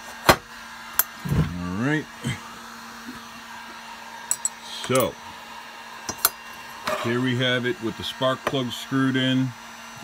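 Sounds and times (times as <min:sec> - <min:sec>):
steady low hum: 0:00.9 - 0:10.0.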